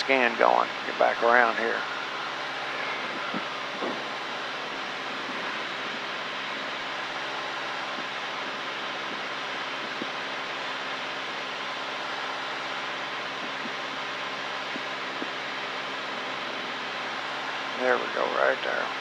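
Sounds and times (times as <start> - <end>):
airplane engine and propeller droning: 0.0 - 19.0
rush of airflow: 0.0 - 19.0.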